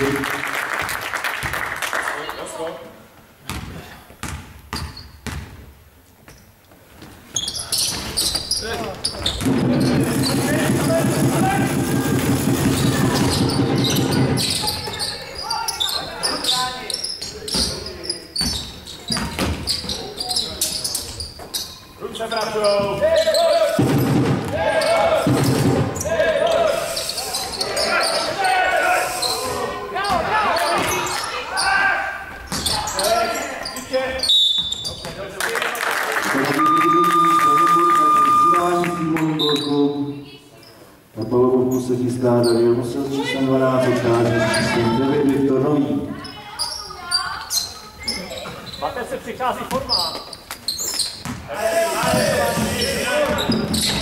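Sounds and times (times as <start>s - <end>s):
ball bouncing on hardwood floor: 9.2s - 14.4s
spectators shouting and cheering: 10.1s - 14.4s.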